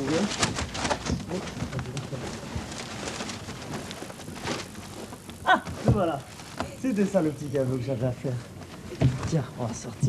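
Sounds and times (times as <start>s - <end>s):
paper letters rustling: 0.0s - 7.5s.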